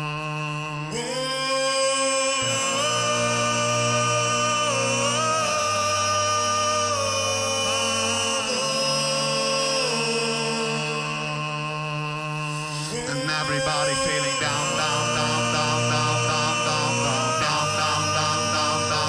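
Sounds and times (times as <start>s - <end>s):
layered sung vocal loops: 0.0s - 19.0s.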